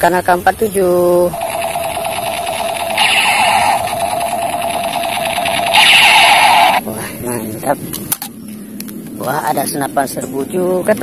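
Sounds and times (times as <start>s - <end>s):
toy gun electronic rapid-fire: 1.2s - 6.8s.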